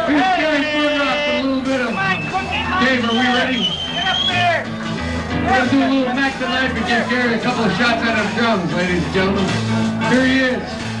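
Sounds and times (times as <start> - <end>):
crowd chatter: 0.0 - 11.0
live rock band playing: 0.0 - 11.0
man's voice: 0.0 - 11.0.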